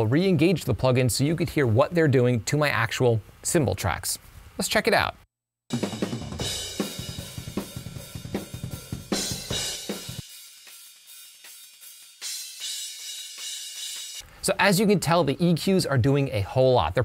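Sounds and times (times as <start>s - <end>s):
drum kit playing: 5.7s - 14.2s
cymbals and hi-hat: 5.7s - 15.0s.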